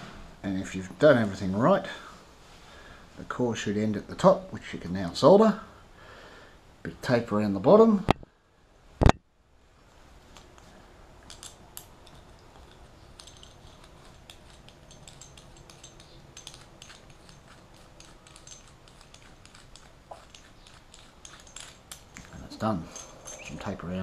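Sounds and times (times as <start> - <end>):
faint background hum: 0.0 - 24.0
fingers rustling tape: 10.3 - 23.7.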